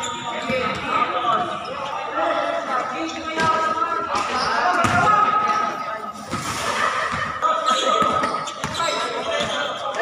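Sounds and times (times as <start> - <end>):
basketball bouncing on court: 4.8 - 5.2.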